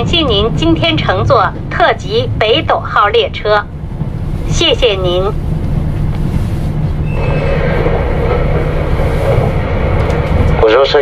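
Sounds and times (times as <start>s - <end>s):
train running rumble: 0.0s - 11.0s.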